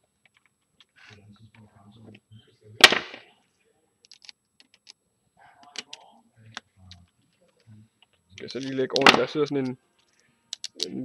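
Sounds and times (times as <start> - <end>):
sharp loud snap: 2.8 - 3.3, 9.0 - 9.4
small parts clicking: 4.0 - 5.0, 5.6 - 11.0.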